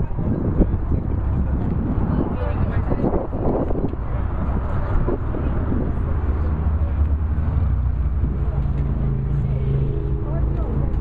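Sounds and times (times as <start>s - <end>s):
people talking: 0.0s - 7.3s, 8.2s - 11.0s.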